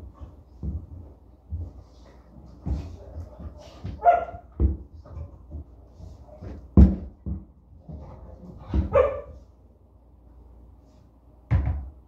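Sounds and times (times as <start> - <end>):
dog barking: 4.0 - 4.5, 8.9 - 9.4
bicycle knocks and clunks: 11.5 - 12.0.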